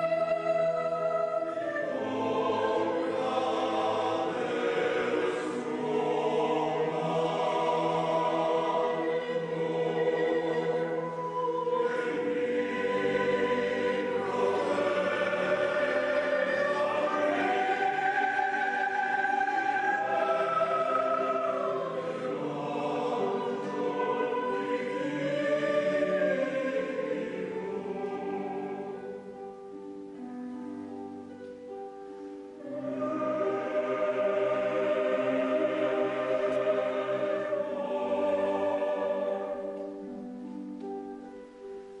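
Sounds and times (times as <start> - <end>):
choir singing slow chords: 0.0 - 42.0.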